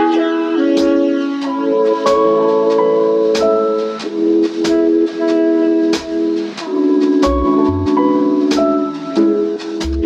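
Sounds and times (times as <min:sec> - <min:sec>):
drum hits: 0:00.0 - 0:10.0
instrumental background music: 0:00.0 - 0:10.0.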